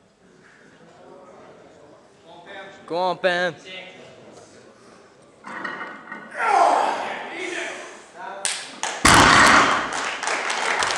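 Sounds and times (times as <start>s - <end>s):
barbell thud on platform: 9.0s - 9.9s.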